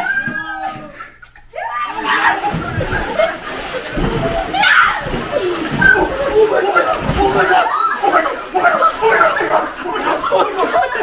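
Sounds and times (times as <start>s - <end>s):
young people shrieking: 0.0s - 1.0s, 1.6s - 11.0s.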